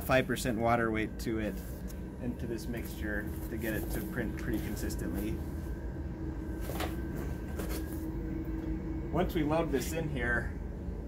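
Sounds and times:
room hum with low tone: 0.0s - 11.0s.

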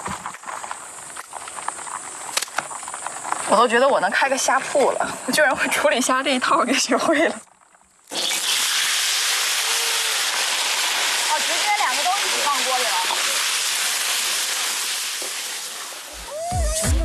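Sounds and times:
loud sizzling in hot oil: 8.0s - 16.3s.

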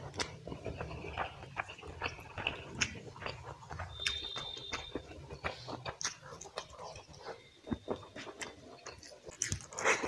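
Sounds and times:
wet chewing and lip smacking: 0.0s - 10.0s.

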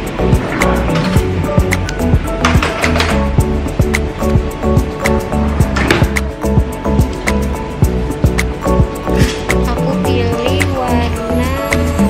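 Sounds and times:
music with steady beat: 0.0s - 12.0s.

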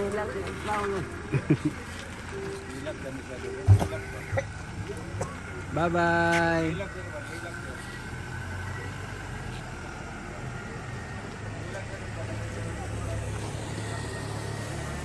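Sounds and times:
car engine humming: 0.0s - 15.0s.

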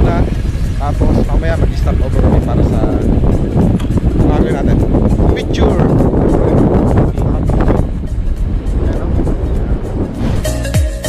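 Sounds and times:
background music: 0.0s - 11.0s
wind rushing: 0.0s - 11.0s.

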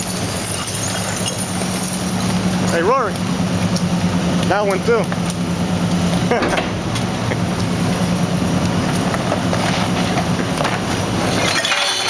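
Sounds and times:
truck diesel engine idling: 1.4s - 11.2s.

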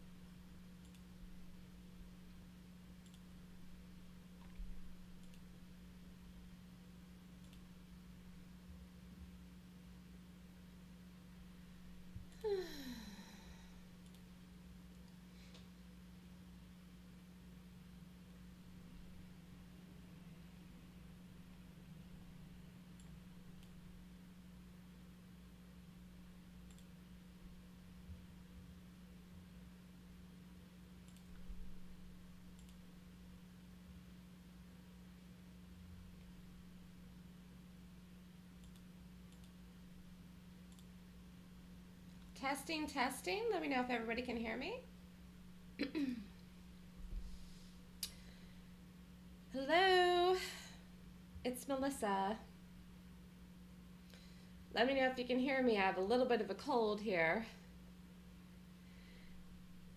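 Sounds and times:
low hum: 0.0s - 55.3s
faint clicks: 0.8s - 1.1s, 3.0s - 3.3s, 4.4s - 5.5s, 7.4s - 7.7s, 14.0s - 14.3s, 26.6s - 27.0s, 31.0s - 31.5s, 32.5s - 32.8s, 38.6s - 39.6s, 40.7s - 40.9s
person sighing: 12.3s - 13.8s, 45.8s - 46.4s.

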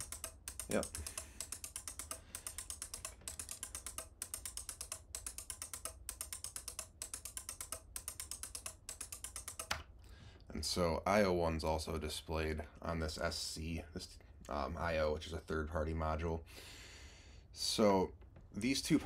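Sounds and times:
relays clicking rapidly: 0.0s - 9.8s.

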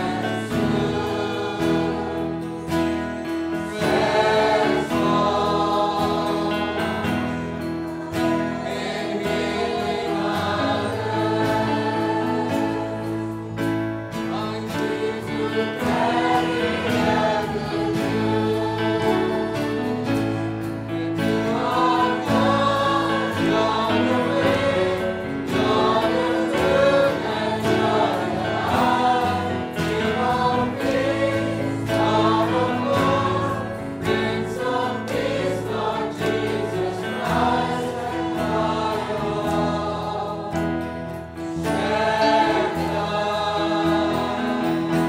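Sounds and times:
choir singing worship song: 0.0s - 45.0s
sustained instrumental backing: 0.0s - 45.0s.

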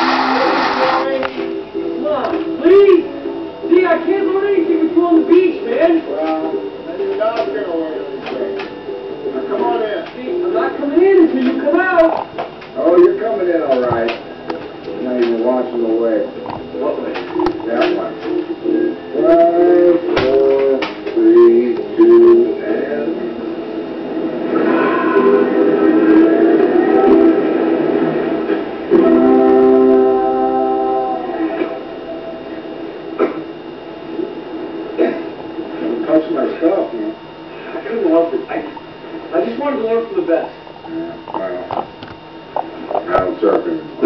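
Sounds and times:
guitar music: 0.0s - 34.0s
voices from television: 0.0s - 44.0s
held musical chord: 28.9s - 32.4s.

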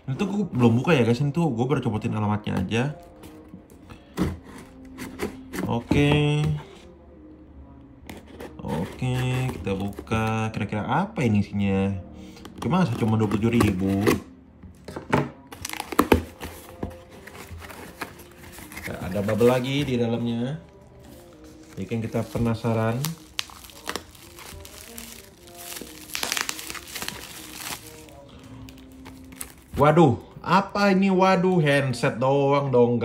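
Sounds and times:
soft background music: 0.0s - 33.0s.

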